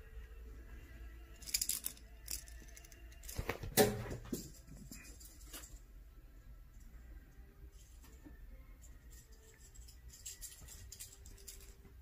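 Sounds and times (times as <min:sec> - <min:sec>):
toy ball jingling: 0:01.4 - 0:03.4, 0:08.8 - 0:11.9.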